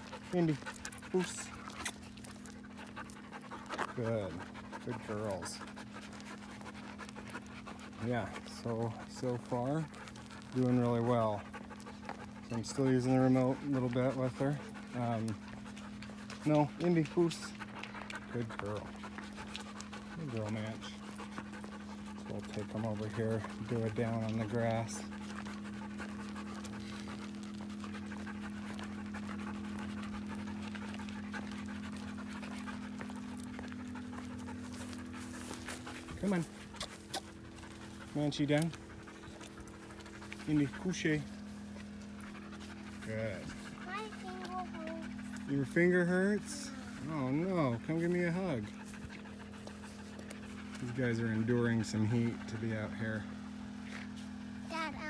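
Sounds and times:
dog panting: 0:00.0 - 0:55.0
steady low hum: 0:00.0 - 0:55.0.

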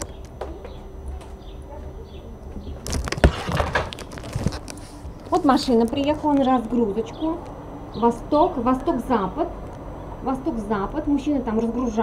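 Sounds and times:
rustling and clatter: 0:02.6 - 0:06.5
camera handling rumble: 0:02.8 - 0:06.5.

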